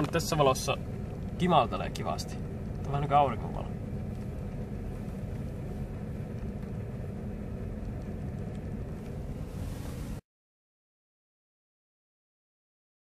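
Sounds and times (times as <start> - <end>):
car engine running: 0.0 - 10.2
road noise inside car: 0.0 - 10.2.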